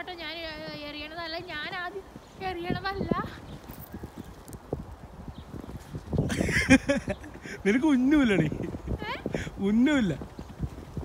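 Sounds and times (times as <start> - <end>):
footsteps in snow: 0.3 - 6.3.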